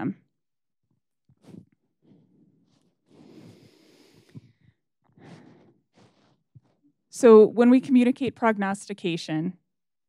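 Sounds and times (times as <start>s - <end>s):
person breathing near microphone: 1.3s - 6.9s.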